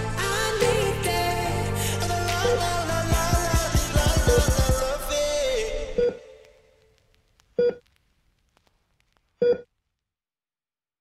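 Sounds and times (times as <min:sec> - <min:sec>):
patient monitor beeps: 0:09.4 - 0:09.7.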